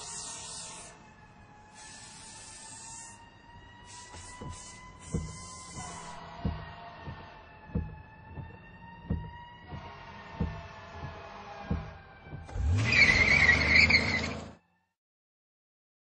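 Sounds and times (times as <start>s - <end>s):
deep electronic thumps: 4.2s - 12.6s.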